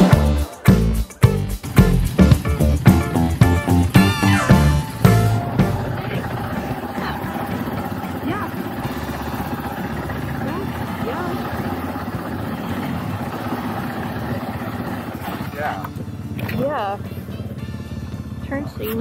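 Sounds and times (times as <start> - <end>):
motorcycle engines idling: 0.0 - 19.0
faint voices: 5.7 - 17.5.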